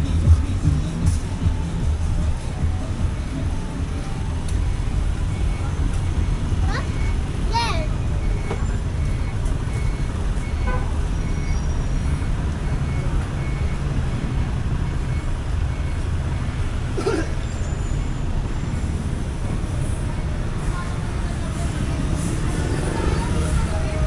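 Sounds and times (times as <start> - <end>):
street traffic rumble: 0.0 - 24.0
faint high beep: 3.2 - 16.6.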